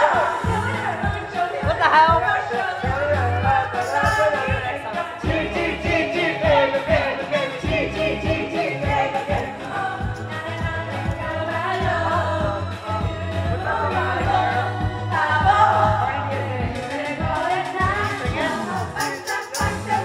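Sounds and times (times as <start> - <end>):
pop backing track with beat: 0.0 - 20.0
voices singing along: 0.0 - 20.0
woman singing into a microphone: 0.0 - 20.0.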